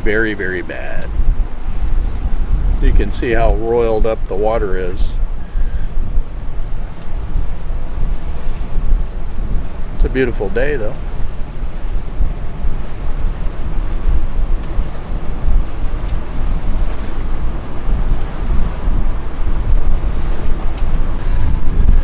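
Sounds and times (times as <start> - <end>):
choppy river water: 0.0 - 22.0
wind rumbling on microphone: 0.0 - 22.0.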